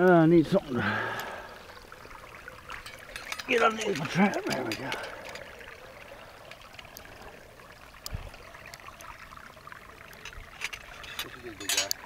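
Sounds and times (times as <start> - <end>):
water trickling: 0.0 - 12.0.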